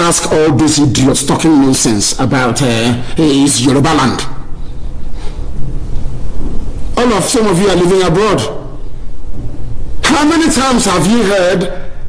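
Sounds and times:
man speaking: 0.0s - 4.5s, 6.9s - 8.8s, 10.0s - 12.0s
loud low rumbling: 4.3s - 10.6s.

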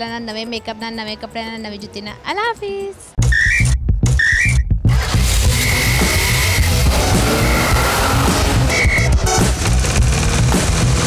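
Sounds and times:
rising whistle toots: 3.2s - 4.7s, 5.4s - 9.2s
upbeat music with whistle notes: 3.2s - 9.5s.

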